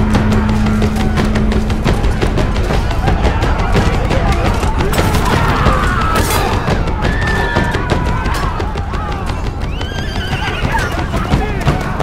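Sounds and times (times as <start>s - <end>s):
film score music: 0.0s - 12.0s
men shouting and screaming: 0.0s - 12.0s
horse whinnying: 9.7s - 11.2s.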